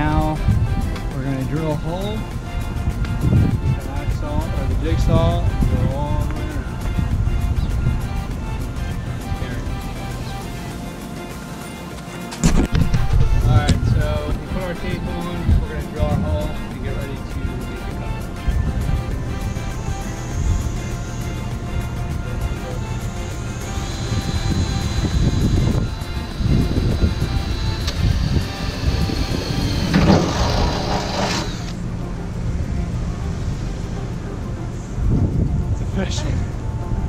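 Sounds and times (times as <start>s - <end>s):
background music: 0.0s - 37.0s
cordless drill boring through metal: 23.3s - 31.8s.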